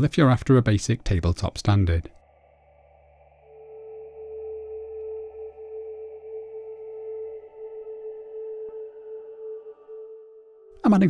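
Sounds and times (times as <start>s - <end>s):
sustained ambient music tone: 2.1s - 11.0s.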